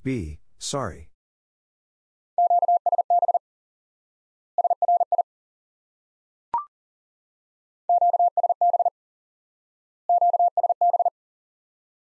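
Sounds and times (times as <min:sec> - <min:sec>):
morse code beeping: 0:02.4 - 0:03.4, 0:04.6 - 0:05.2, 0:07.9 - 0:08.9, 0:10.1 - 0:11.1.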